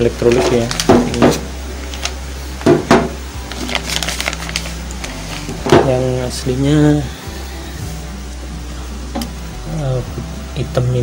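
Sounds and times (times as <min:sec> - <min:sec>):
plastic bags crinkling: 0:00.0 - 0:07.0
steady low hum: 0:00.0 - 0:11.0.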